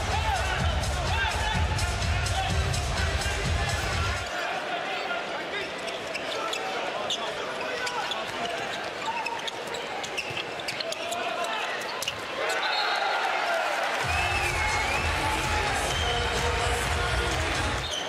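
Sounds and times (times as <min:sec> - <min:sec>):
arena crowd noise: 0:00.0 - 0:18.0
low background music: 0:14.0 - 0:17.8.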